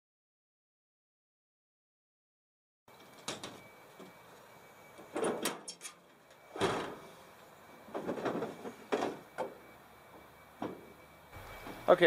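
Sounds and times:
truck lid clunks and rattles: 5.0 - 7.1, 7.9 - 9.6, 10.6 - 10.9.

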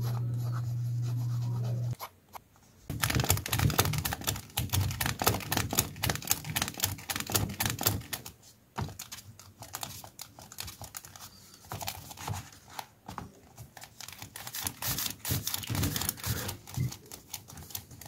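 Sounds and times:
eraser rubbing on paper: 14.4 - 16.7.

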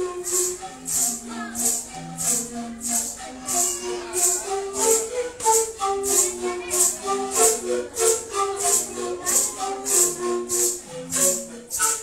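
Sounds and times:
maracas shaking: 0.0 - 12.0
panpipes playing melody: 0.0 - 12.0.

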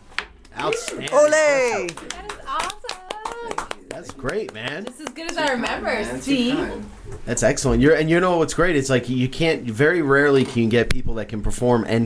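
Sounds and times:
hand clapping: 0.4 - 5.8
person speaking: 0.6 - 6.6.

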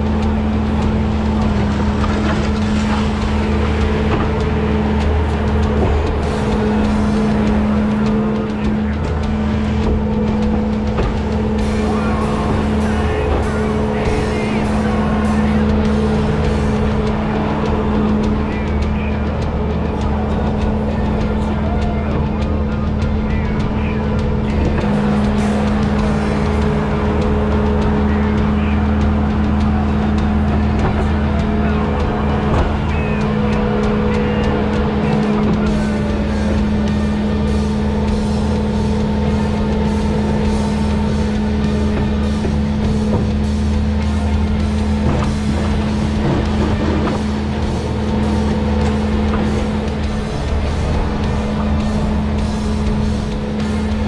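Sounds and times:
diesel engine running: 0.0 - 54.0
music playing: 0.0 - 54.0.

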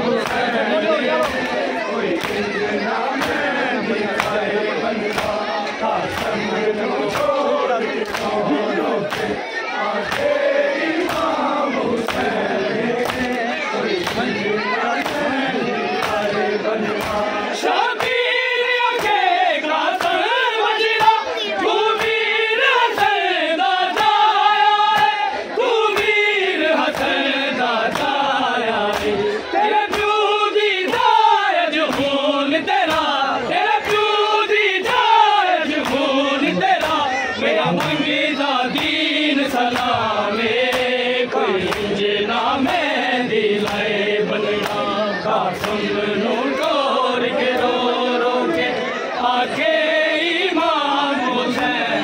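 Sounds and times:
men chanting a mourning lament: 0.0 - 52.0
chest-beating slaps: 0.2 - 0.6, 1.2 - 9.4, 10.0 - 17.4, 25.9 - 26.2, 26.9 - 27.2, 27.9 - 30.2, 32.8 - 33.2, 35.7 - 37.1, 37.7 - 38.1, 38.7 - 40.0, 40.6 - 42.0, 43.5 - 44.9, 45.5 - 45.9
hands beating on chests: 1.2 - 8.4, 16.0 - 19.2.

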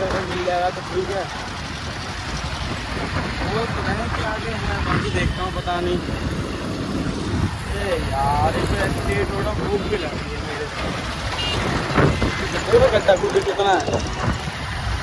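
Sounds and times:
people talking: 0.0 - 1.3, 3.4 - 6.1, 7.7 - 10.9, 12.4 - 14.3
motorcycle engine: 0.0 - 15.0
traffic noise: 0.0 - 15.0
wind buffeting microphone: 0.0 - 15.0.

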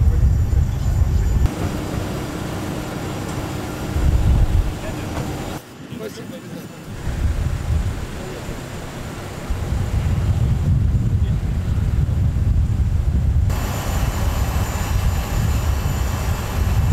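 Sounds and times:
low rumble of aircraft and vehicles: 0.0 - 16.9
bright hiss: 13.5 - 16.9.

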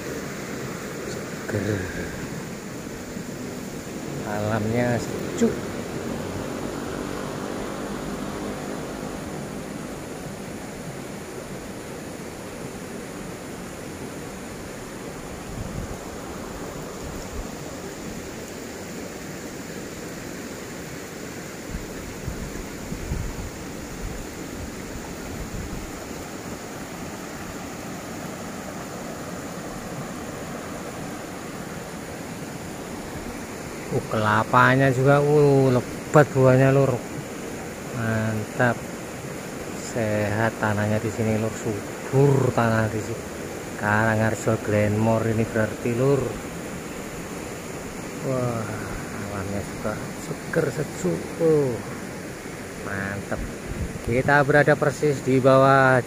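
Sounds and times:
river rushing: 0.0 - 56.0.

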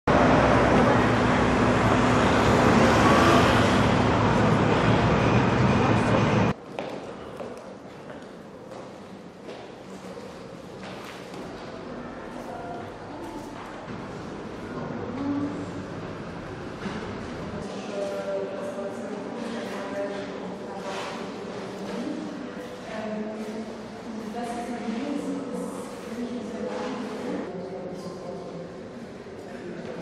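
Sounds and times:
city street traffic noise: 0.1 - 9.4, 10.2 - 27.7.

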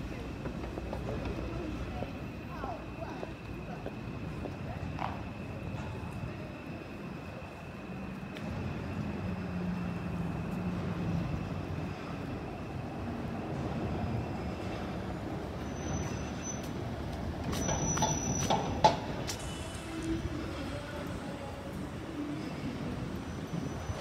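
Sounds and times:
traffic rumble: 0.0 - 24.0.

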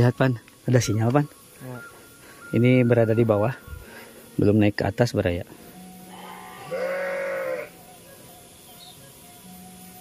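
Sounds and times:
farm animal bleating: 6.0 - 7.8.

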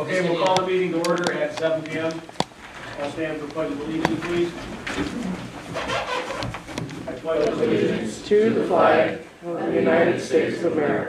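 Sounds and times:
chairs creaking: 0.0 - 8.2
people shuffling: 0.0 - 9.4
sharp clicks and knocks: 0.4 - 7.5.

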